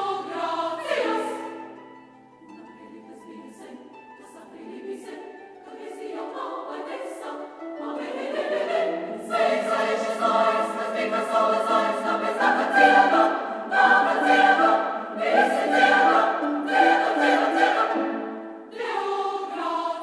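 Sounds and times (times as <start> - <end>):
women's choir singing: 0.0 - 1.8, 2.6 - 20.0.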